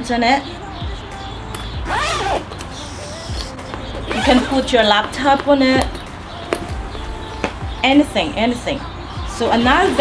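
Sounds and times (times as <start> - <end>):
soft background music: 0.0 - 10.0
bag zipper pulled open: 1.9 - 3.3, 4.1 - 4.6.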